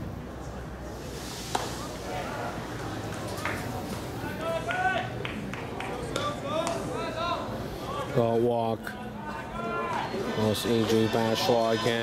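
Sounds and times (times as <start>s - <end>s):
crowd murmuring and calling out: 0.4s - 12.0s.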